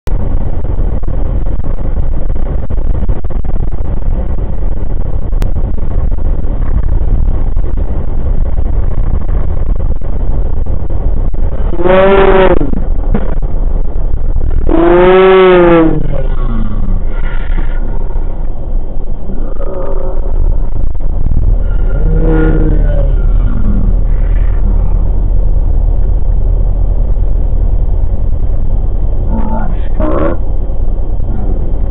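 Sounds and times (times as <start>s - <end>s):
road and wind rumble: 0.0s - 31.9s
slowed vocal cry: 11.7s - 12.9s, 14.7s - 18.0s, 21.6s - 25.0s, 29.3s - 30.4s.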